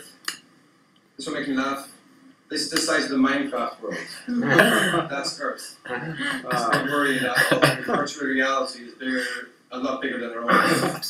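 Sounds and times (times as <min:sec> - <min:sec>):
person talking: 0:02.5 - 0:11.0.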